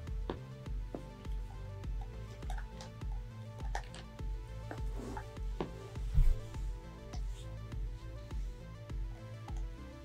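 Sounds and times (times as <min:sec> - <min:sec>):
music with pulsing bass: 0:00.0 - 0:10.0.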